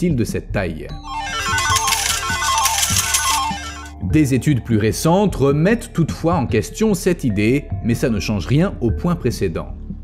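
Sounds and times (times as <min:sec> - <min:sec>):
background music: 0:00.0 - 0:10.0
slot machine jackpot jingle: 0:01.0 - 0:03.9
coins clinking: 0:01.1 - 0:03.9.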